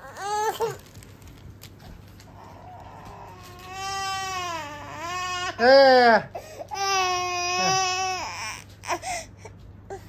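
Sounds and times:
infant crying: 0:00.0 - 0:00.8, 0:02.4 - 0:09.3.

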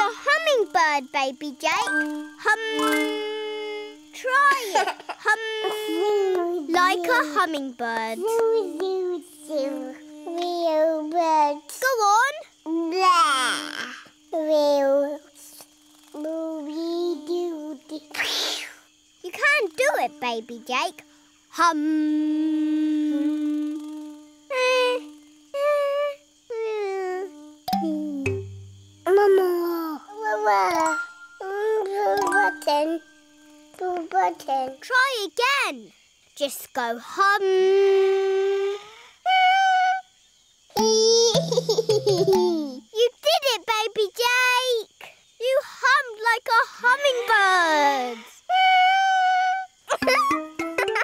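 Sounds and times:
person humming a steady note: 0:01.9 - 0:04.0, 0:21.8 - 0:24.1, 0:27.2 - 0:29.1, 0:40.8 - 0:42.7.

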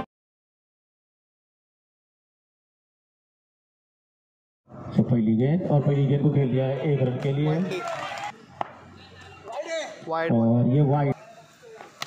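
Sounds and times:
quiet crowd background: 0:04.7 - 0:12.0
high shout: 0:07.0 - 0:08.4.

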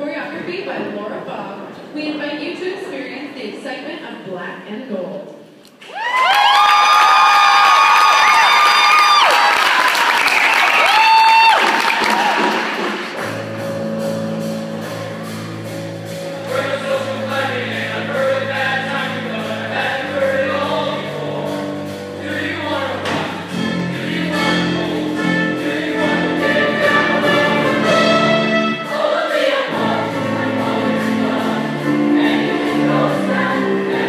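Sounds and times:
audience cheering and applause: 0:05.8 - 0:13.3
band playing low chords: 0:12.8 - 0:34.0
choir singing: 0:16.4 - 0:34.0.

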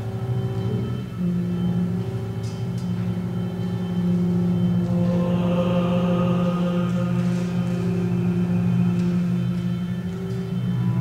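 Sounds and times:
faint held tones: 0:00.0 - 0:11.0
sustained low drone: 0:00.0 - 0:11.0.

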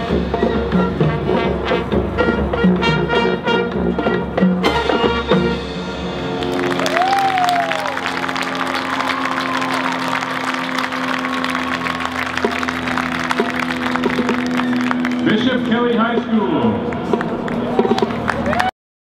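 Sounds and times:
marching band brass: 0:00.0 - 0:18.6
crowd applauding and cheering: 0:06.2 - 0:16.0, 0:16.6 - 0:18.7.

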